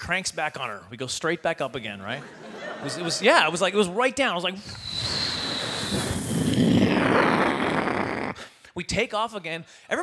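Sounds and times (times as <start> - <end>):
man imitating jet engines: 4.6 - 8.4.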